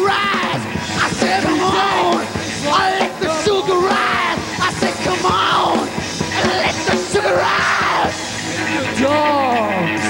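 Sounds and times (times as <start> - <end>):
live punk band playing: 0.0 - 10.0
pounding drums: 0.0 - 10.0
person yelling vocals: 6.4 - 8.2.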